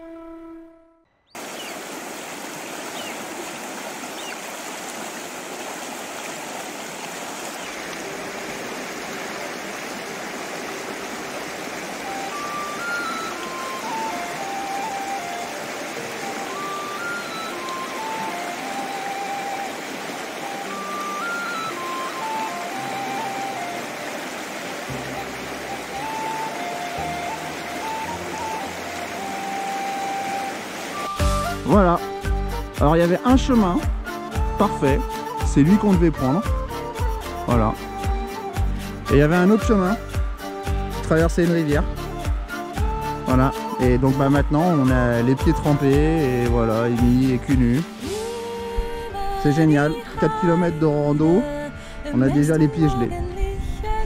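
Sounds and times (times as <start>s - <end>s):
soft melodic background music: 0.0s - 1.3s, 10.6s - 54.0s
river rushing over stones: 1.4s - 32.1s.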